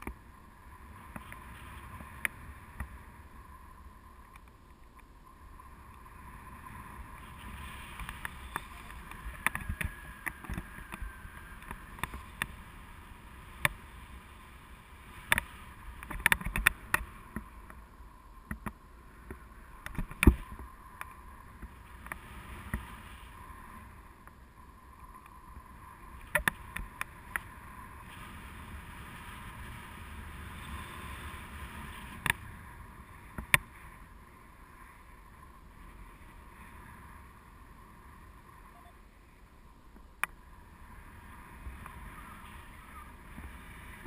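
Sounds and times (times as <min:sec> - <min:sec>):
wind rushing over camera: 0:00.0 - 0:44.0
sharp clicks and knocks: 0:15.3 - 0:17.8.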